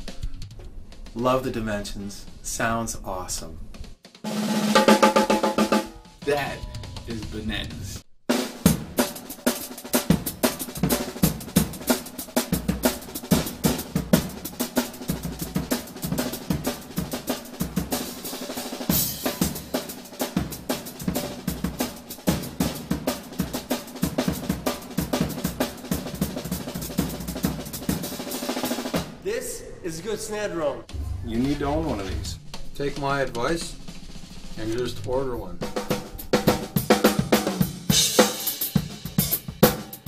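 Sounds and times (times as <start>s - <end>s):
rapid snare drum rolls: 0.0s - 29.2s, 30.3s - 40.0s
bass drum hits: 30.8s - 33.1s.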